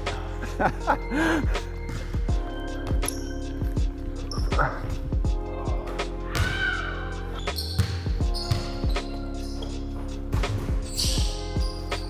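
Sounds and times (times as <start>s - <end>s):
background music: 0.0s - 12.0s
shoe squeak: 2.0s - 5.0s, 7.3s - 9.9s, 10.8s - 12.0s
basketball bouncing on hardwood: 7.8s - 9.0s.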